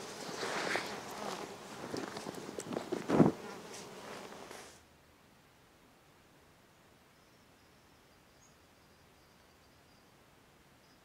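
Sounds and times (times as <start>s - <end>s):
bees buzzing: 0.0s - 4.7s
jacket thumping onto grass: 0.4s - 3.4s.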